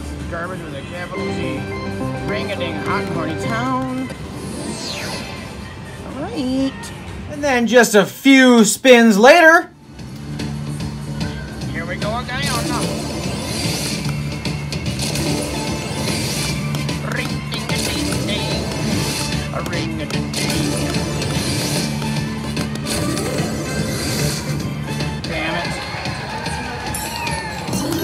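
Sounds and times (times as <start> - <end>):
indistinct casino voices: 0.0 - 28.0
slot machine droning music loop: 1.0 - 5.9, 10.1 - 25.6.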